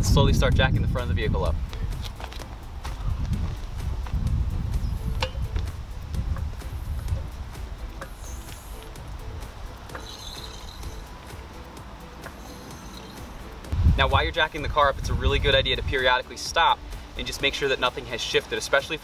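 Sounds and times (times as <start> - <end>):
wind buffeting microphone: 0.0 - 9.9, 13.7 - 16.2.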